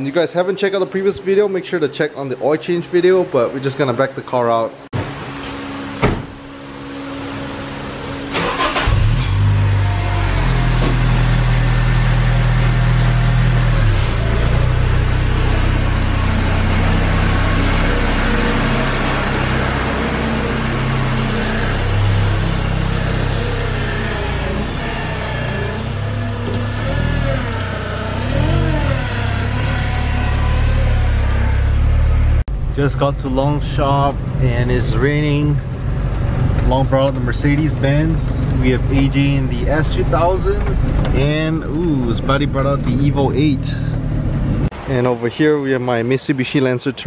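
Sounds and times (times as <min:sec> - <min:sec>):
car engine starting and idling: 0:05.0 - 0:45.1.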